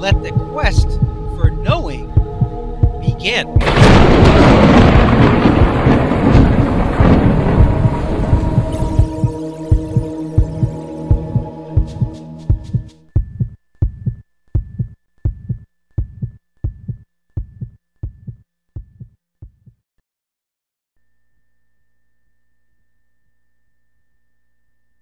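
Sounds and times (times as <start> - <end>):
deep heartbeat-like thumps: 0.0 - 19.8
rumble with steady hum: 0.3 - 5.9.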